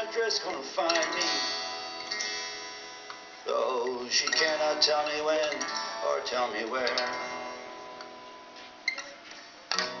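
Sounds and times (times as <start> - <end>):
guitar chord ringing: 0.0 - 10.0.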